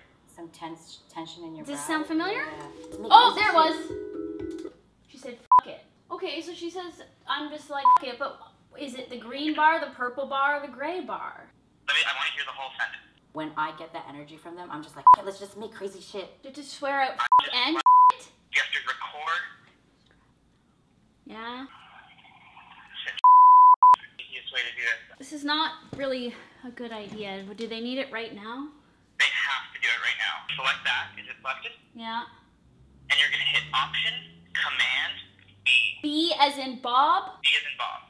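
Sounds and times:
short sharp beep: 0:23.2 - 0:24.0.

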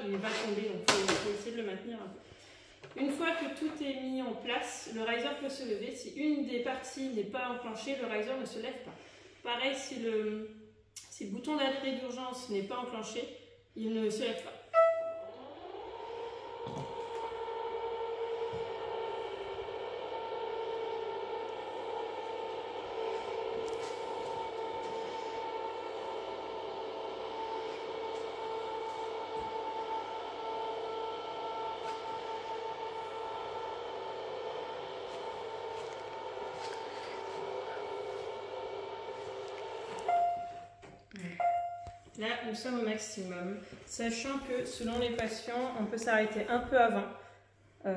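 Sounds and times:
short beeps: 0:14.8 - 0:15.3, 0:40.1 - 0:40.8, 0:41.4 - 0:42.0
electric motor droning: 0:14.8 - 0:40.6.

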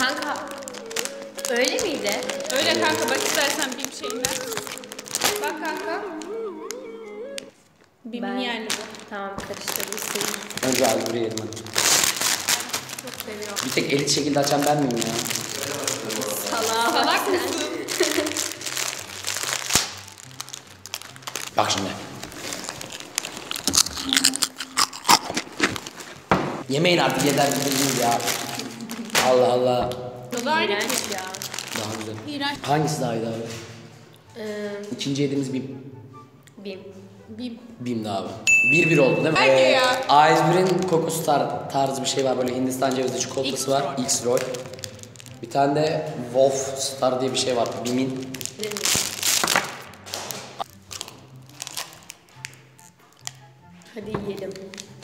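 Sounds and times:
chips being crunched: 0:00.0 - 0:06.3, 0:08.7 - 0:26.2, 0:27.1 - 0:29.5, 0:30.3 - 0:32.3, 0:39.9 - 0:41.2, 0:41.8 - 0:45.5, 0:47.3 - 0:52.6
plastic wrapper crinkling and tearing: 0:00.0 - 0:07.9, 0:08.6 - 0:35.0, 0:39.4 - 0:55.0
soft background music: 0:00.0 - 0:55.0
chewing: 0:22.3 - 0:26.1.

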